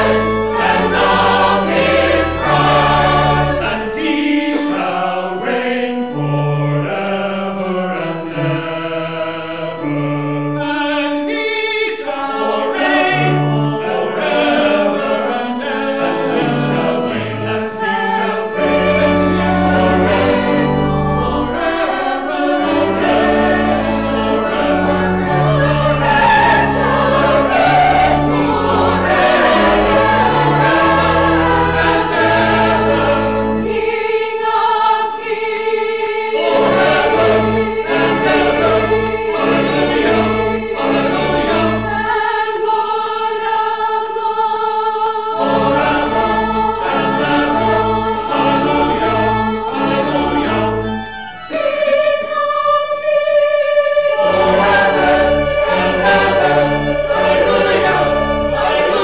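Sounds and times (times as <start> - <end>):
church choir singing: 0.0 - 59.0
organ: 0.0 - 59.0.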